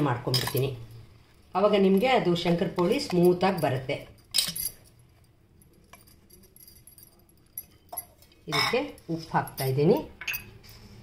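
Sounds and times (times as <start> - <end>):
metal clinks and scrapes on pot: 2.0 - 10.9.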